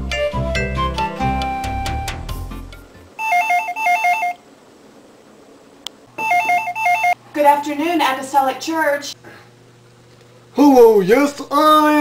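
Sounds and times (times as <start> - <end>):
telephone ringing with warbling trill: 3.2 - 4.4, 6.2 - 7.2.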